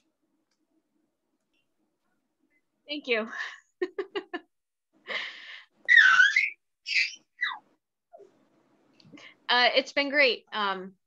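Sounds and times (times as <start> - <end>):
child squealing: 5.9 - 7.6.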